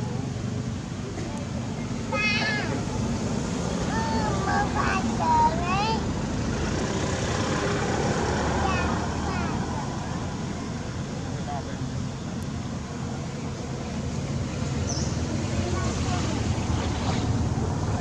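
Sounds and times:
low engine-like hum: 0:00.0 - 0:18.0.

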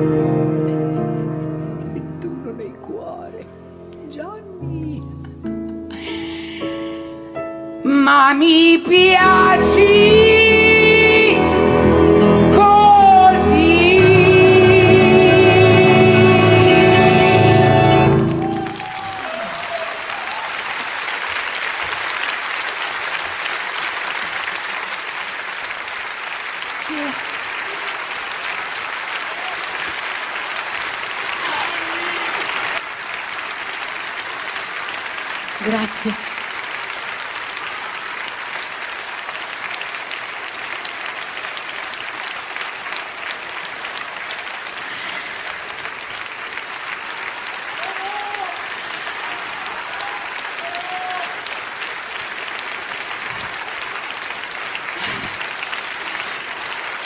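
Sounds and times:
audience applauding: 0:12.6 - 0:57.0.

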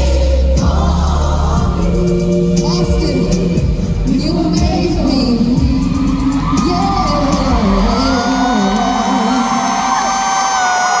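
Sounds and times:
live concert music: 0:00.0 - 0:11.0
crowd cheering and whooping: 0:05.2 - 0:11.0.

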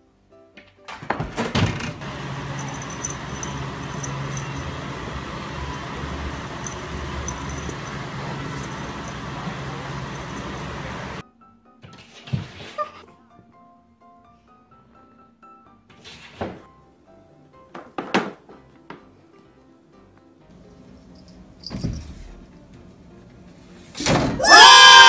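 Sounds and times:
background music: 0:00.0 - 0:01.6, 0:11.2 - 0:25.0.

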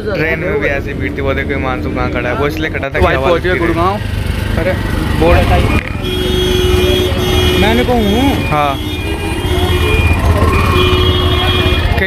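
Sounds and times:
road traffic rumble: 0:00.0 - 0:12.0
voices: 0:00.0 - 0:12.0.

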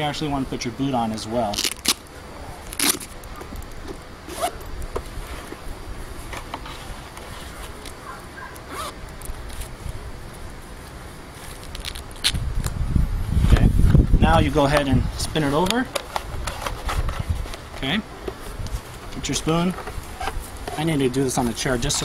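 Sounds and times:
rustling and scraping: 0:01.3 - 0:12.5, 0:13.3 - 0:22.0.

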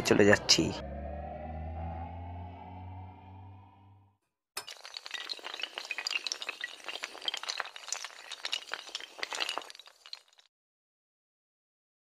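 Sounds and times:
small hard pieces clinking: 0:04.6 - 0:10.5.

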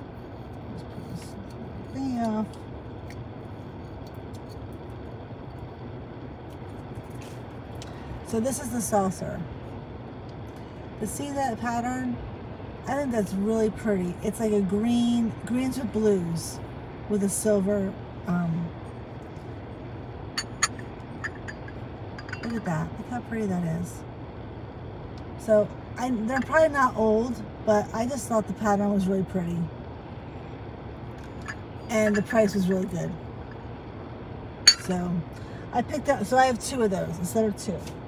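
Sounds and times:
low hum inside car: 0:00.0 - 0:38.0
teacup clinking on saucer: 0:34.7 - 0:34.9.

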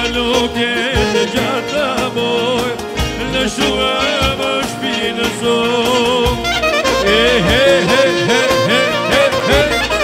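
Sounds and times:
folk dance music: 0:00.0 - 0:10.0.

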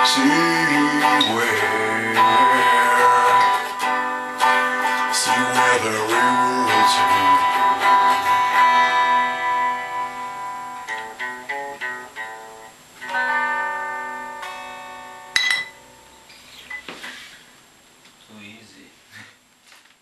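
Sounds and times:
guitar chords and picked notes: 0:00.0 - 0:16.5.

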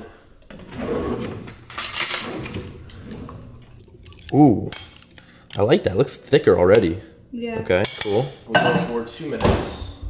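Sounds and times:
metal cutlery clattering: 0:01.4 - 0:02.6.

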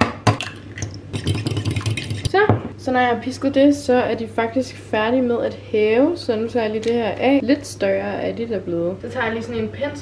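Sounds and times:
egg cracking: 0:00.4 - 0:02.3.

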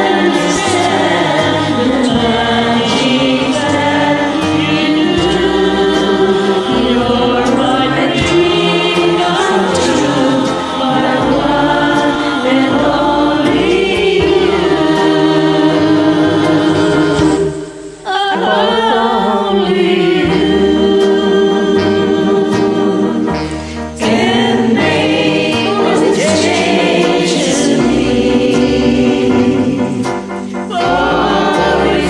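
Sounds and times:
karaoke backing track: 0:00.0 - 0:32.0
people singing: 0:00.0 - 0:32.0.

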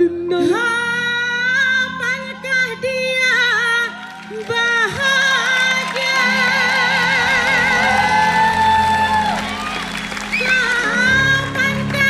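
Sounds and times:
woman singing: 0:00.0 - 0:09.5, 0:10.3 - 0:12.0
keyboard backing: 0:00.0 - 0:12.0.

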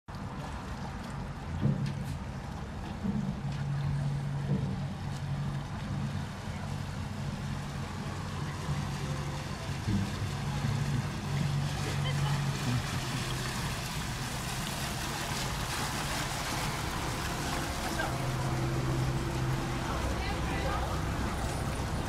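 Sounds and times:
boat engine humming: 0:00.1 - 0:22.0
wind and water hiss: 0:00.1 - 0:22.0.

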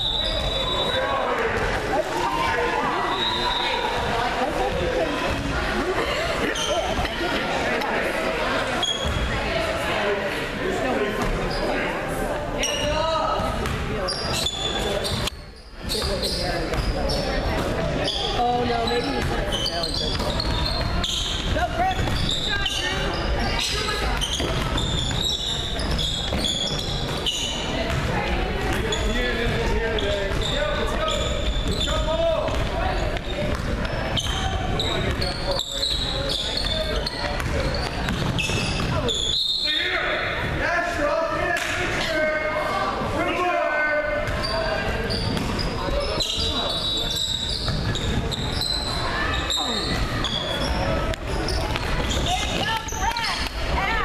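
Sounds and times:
ball bouncing on hardwood court: 0:13.5 - 0:14.0, 0:19.2 - 0:22.6, 0:24.0 - 0:25.2, 0:27.8 - 0:30.5, 0:32.4 - 0:35.3, 0:36.6 - 0:39.1.

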